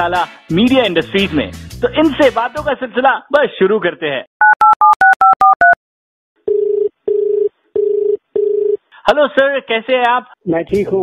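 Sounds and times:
telephone ringback tone: 0:06.5 - 0:08.8.

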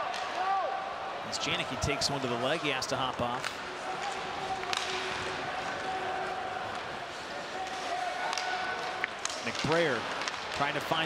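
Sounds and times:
crowd noise: 0:00.0 - 0:11.0
stick hitting puck clack: 0:03.4 - 0:05.3, 0:07.6 - 0:11.0.

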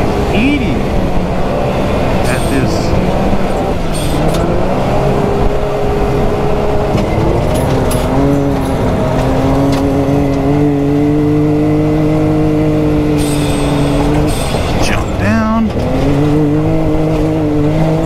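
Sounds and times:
engine running at high revs: 0:00.0 - 0:18.0.

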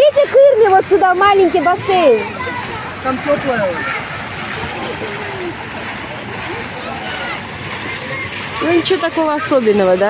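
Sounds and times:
children shouting and chattering: 0:00.0 - 0:10.0
fountain water rushing: 0:00.0 - 0:10.0.

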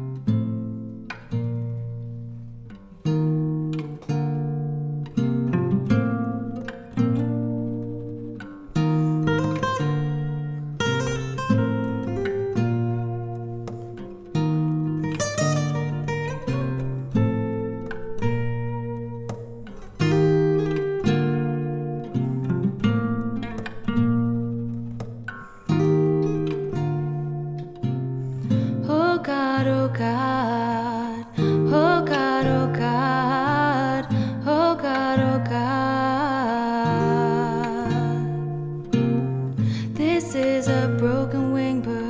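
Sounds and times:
acoustic guitar plucked chords: 0:00.0 - 0:42.0.

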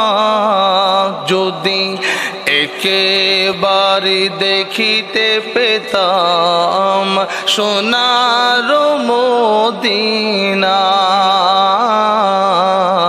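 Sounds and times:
man singing devotional song: 0:00.0 - 0:13.0.

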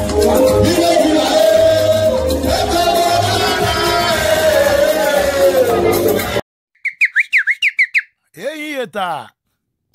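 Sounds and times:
man singing into a microphone: 0:00.6 - 0:05.8
short high falling whistle notes: 0:06.8 - 0:08.1
person speaking: 0:08.3 - 0:09.5.

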